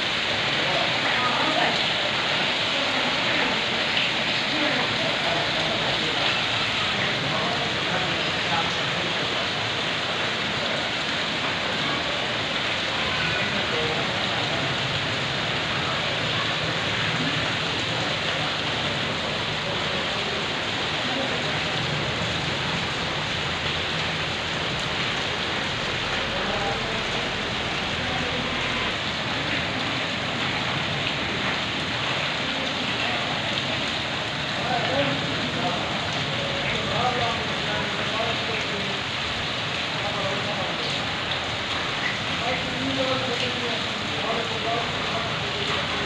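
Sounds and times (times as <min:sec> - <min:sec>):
heavy rain on concrete: 0:00.0 - 0:46.0.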